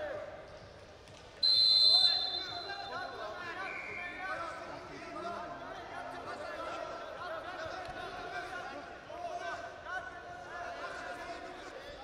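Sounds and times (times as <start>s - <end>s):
referee's whistle blast: 1.4s - 3.0s.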